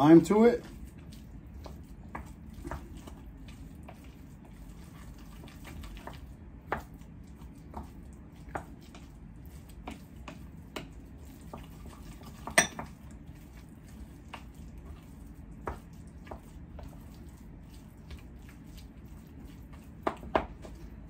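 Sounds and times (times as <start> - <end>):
utensil mashing in bowl: 0.0 - 21.0.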